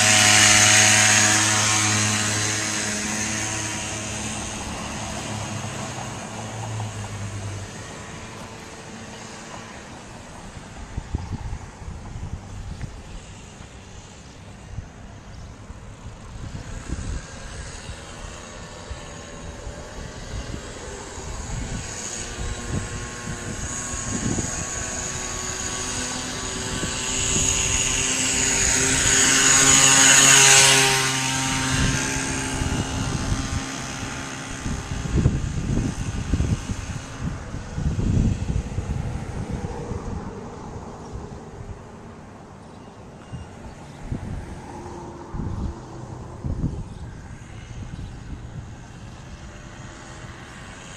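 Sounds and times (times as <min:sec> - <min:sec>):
motorized bicycle engine buzzing: 0:00.0 - 0:41.7, 0:42.8 - 0:50.9
wind buffeting microphone: 0:00.0 - 0:50.9.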